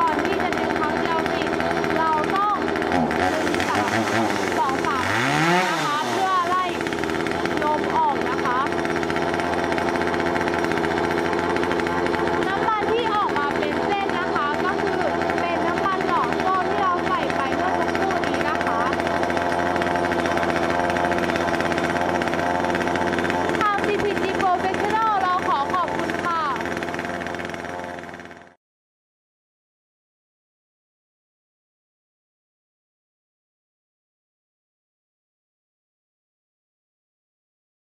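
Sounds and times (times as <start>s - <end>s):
chainsaw engine running: 0.0s - 28.6s.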